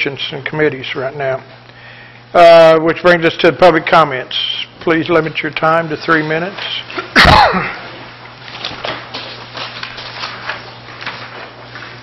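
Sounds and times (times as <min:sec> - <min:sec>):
person coughing: 0:07.0 - 0:07.9.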